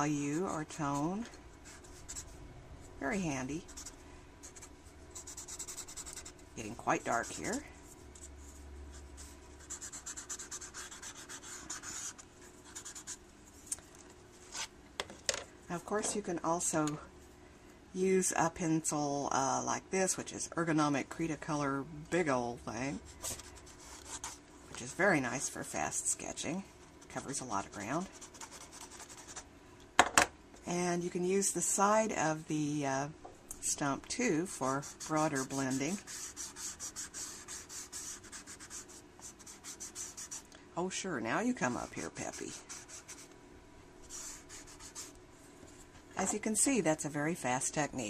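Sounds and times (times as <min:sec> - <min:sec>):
blending stump scratching paper: 0:09.2 - 0:13.2, 0:34.4 - 0:40.4.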